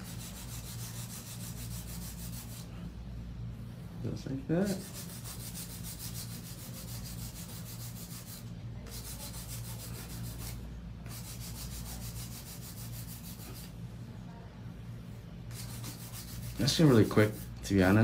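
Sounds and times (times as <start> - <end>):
hand file rasping on nail: 0.0 - 2.7, 4.7 - 13.7, 15.5 - 17.4.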